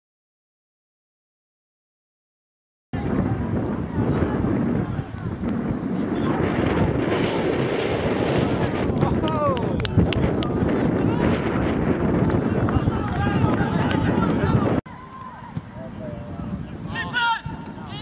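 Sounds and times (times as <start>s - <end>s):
wind buffeting microphone: 3.0s - 18.0s.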